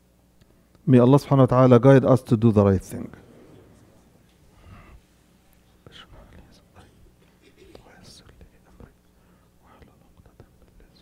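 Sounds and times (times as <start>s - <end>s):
man whispering: 5.6s - 11.0s.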